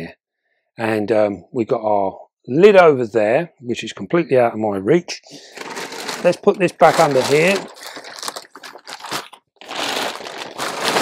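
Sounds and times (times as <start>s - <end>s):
objects rustling and scraping: 5.4s - 9.2s.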